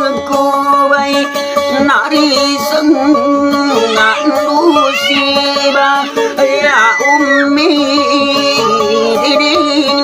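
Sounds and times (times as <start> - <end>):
acoustic guitar: 0.0 - 10.0
man singing folk song: 0.0 - 10.0.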